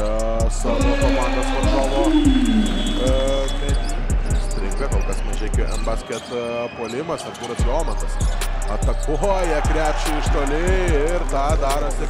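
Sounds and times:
arena music: 0.0 - 6.0, 7.6 - 12.0.

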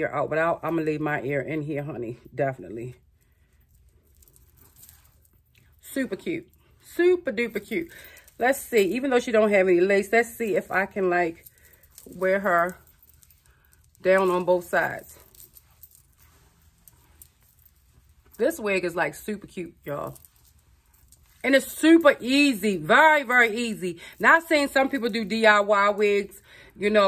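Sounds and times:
faint rustling of hair: 0.0 - 27.0
low room hum: 0.0 - 27.0.

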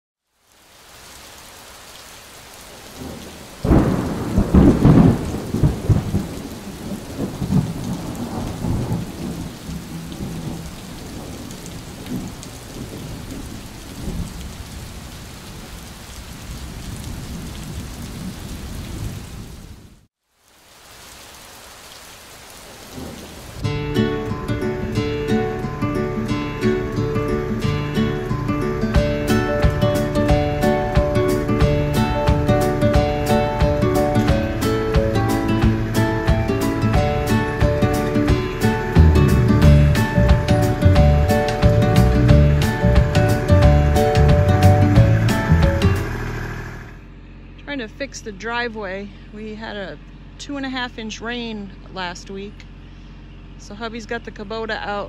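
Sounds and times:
steady rain: 0.2 - 47.4
thunder clap rumbling: 2.7 - 20.1, 22.7 - 25.7, 28.6 - 46.6
music: 23.6 - 46.1.

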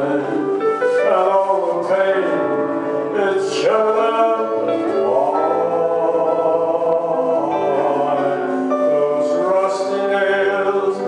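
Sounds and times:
gospel singing over backing track: 0.0 - 11.0.

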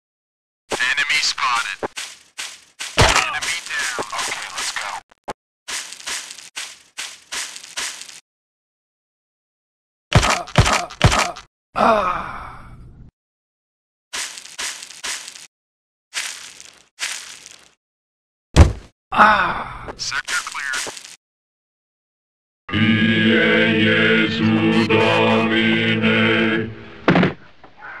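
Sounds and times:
man speaking: 0.8 - 1.8, 3.0 - 5.0, 20.0 - 20.9
rhythmic vocal grunts: 10.2 - 11.5
heavy thud: 18.6 - 18.9.

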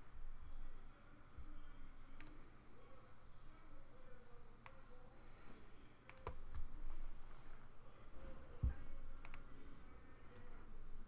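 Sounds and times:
mouse and keyboard clicks: 6.1 - 6.7, 9.2 - 9.5.

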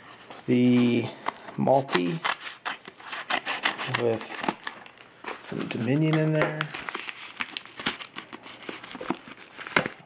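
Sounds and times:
padded envelope crinkling: 0.0 - 10.0.

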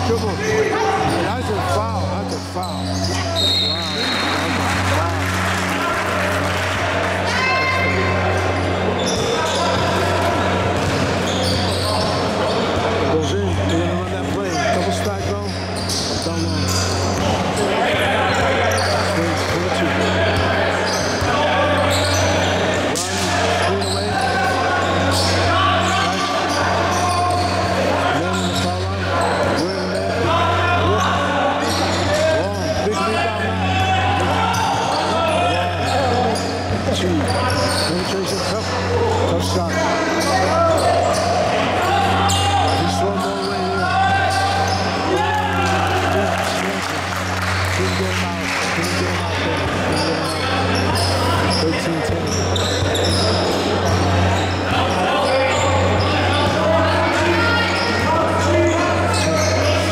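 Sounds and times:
voices of players and spectators: 0.0 - 59.9.

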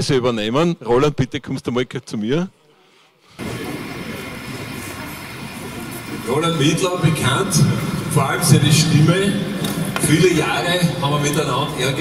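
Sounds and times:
jet engine roar: 3.4 - 10.7.

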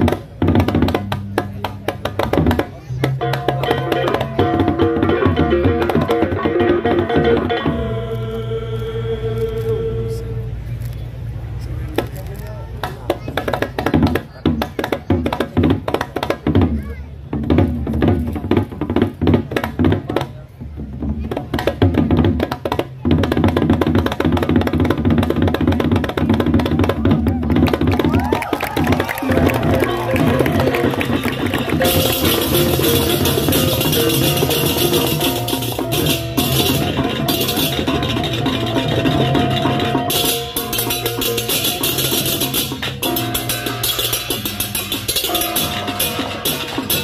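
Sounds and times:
barrel drums beaten in fast runs: 21.2 - 47.0
hand cymbals: 29.9 - 47.0.

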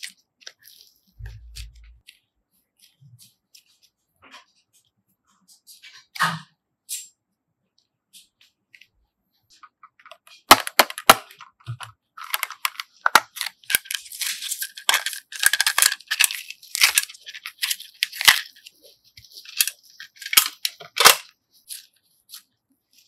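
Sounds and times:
plastic rattling and scraping: 9.6 - 22.4
plastic cases clicking open: 10.0 - 18.6, 19.5 - 21.3.

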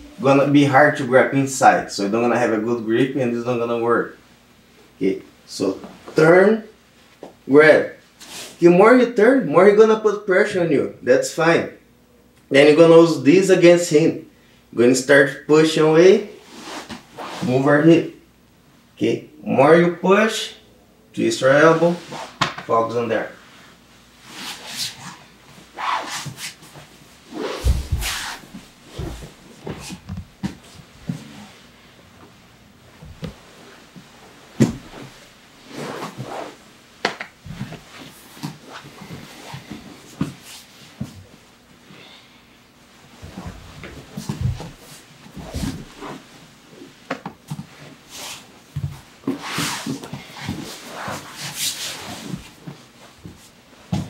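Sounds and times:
cloth rustling and rubbing: 23.4 - 31.9, 32.9 - 41.4, 43.1 - 54.0
bodies scuffing on mats: 25.8 - 31.6, 32.9 - 36.6, 43.1 - 46.4
dull thump on mat: 27.6 - 28.4, 34.6 - 35.1.

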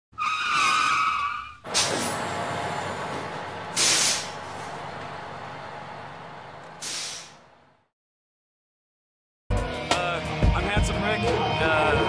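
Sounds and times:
tire screech: 0.1 - 4.9
air brakes hissing: 1.7 - 4.9, 6.7 - 7.5.

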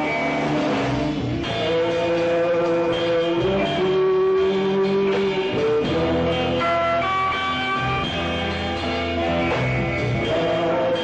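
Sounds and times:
rock band instrumental: 0.0 - 11.0.

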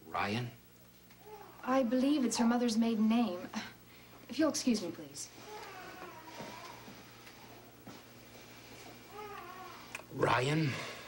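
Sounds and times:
low steady hum: 0.0 - 11.0
newborn baby crying: 1.2 - 1.7, 5.3 - 7.0, 9.1 - 9.9.

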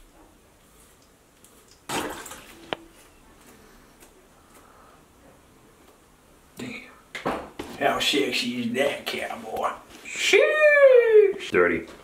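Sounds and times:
water splash: 1.8 - 2.7.

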